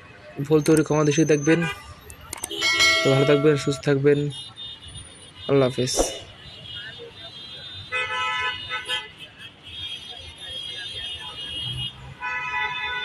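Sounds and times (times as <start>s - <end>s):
vehicle horns honking: 1.5s - 13.0s.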